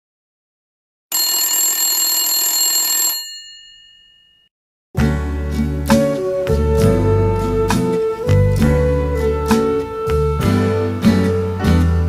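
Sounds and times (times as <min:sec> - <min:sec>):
electric bell ringing: 0:01.1 - 0:04.5.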